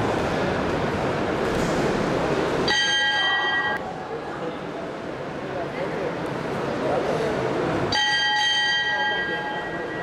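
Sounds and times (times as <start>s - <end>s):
boxing ring bell ringing: 2.7s - 3.8s, 7.9s - 10.0s.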